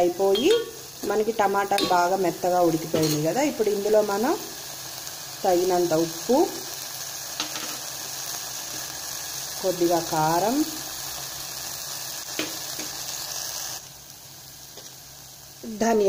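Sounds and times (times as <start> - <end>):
tomato mixture sizzling in pot: 0.0 - 16.0.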